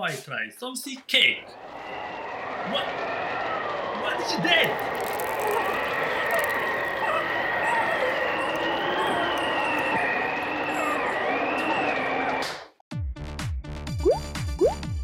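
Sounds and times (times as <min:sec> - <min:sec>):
cartoon wind whistling: 0:04.6 - 0:12.5.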